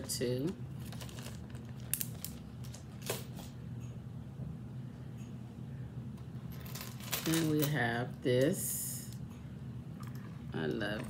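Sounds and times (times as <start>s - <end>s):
jewelry clicking and clinking: 6.3s - 7.8s.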